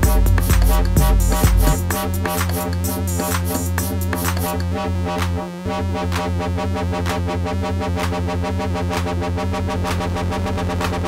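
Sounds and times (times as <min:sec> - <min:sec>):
live techno music: 0:00.0 - 0:11.0.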